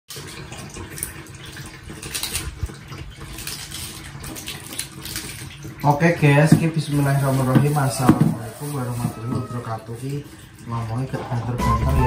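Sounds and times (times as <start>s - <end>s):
water running and splashing: 0.1s - 12.0s.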